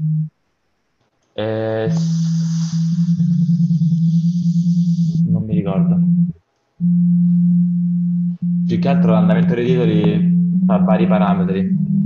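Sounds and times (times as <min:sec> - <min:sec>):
low sine tone: 0:00.0 - 0:00.4, 0:01.9 - 0:12.0.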